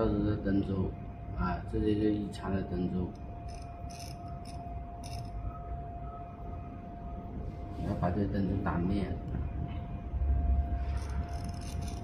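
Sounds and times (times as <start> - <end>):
steady machine hum: 0.0 - 12.0.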